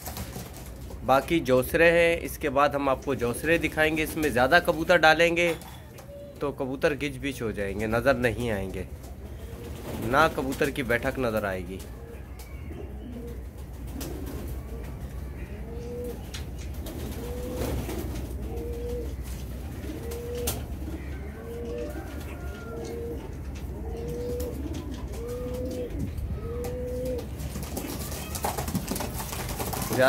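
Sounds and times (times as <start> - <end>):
pigeon cooing: 5.5 - 6.6, 8.9 - 10.8, 11.8 - 30.0.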